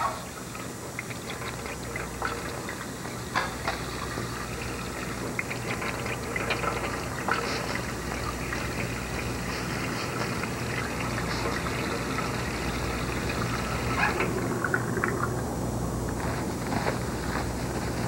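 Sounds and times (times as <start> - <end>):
water running into a sink: 0.0 - 18.0.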